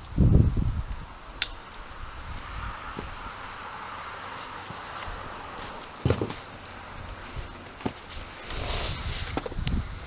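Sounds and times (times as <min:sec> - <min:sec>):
wind buffeting microphone: 0:00.0 - 0:03.6, 0:06.9 - 0:10.0
boots scuffing on pavement: 0:02.3 - 0:08.4.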